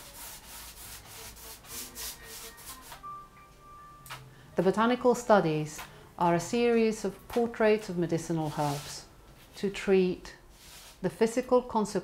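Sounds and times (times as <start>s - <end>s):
paintbrush stroking canvas: 0.0s - 3.0s, 8.3s - 9.0s, 10.5s - 11.1s
soft music with held tone: 0.0s - 12.0s.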